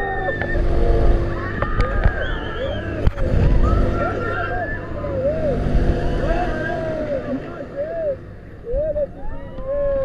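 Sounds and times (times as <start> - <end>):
low rumble of moving ride: 0.0 - 10.0
riders shrieking and whooping: 0.0 - 10.0.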